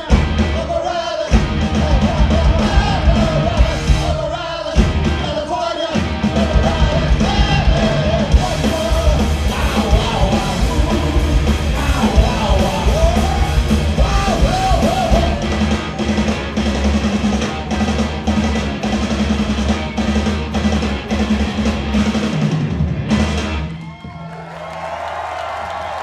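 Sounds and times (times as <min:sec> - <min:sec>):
pounding drums: 0:00.0 - 0:23.8
punk rock band playing: 0:00.0 - 0:24.2
crowd cheering and applauding: 0:23.4 - 0:26.0.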